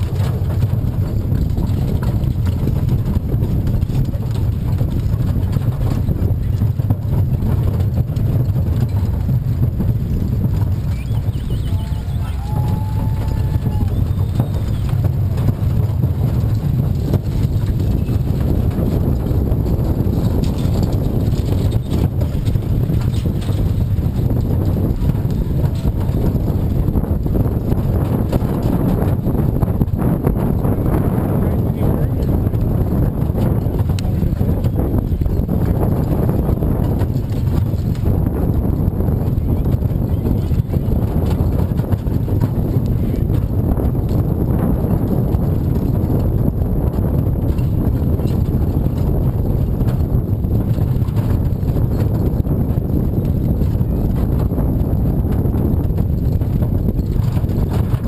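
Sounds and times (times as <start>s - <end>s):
hooves clip-clopping: 0.0s - 58.0s
wagon rumble and rattle: 0.0s - 58.0s.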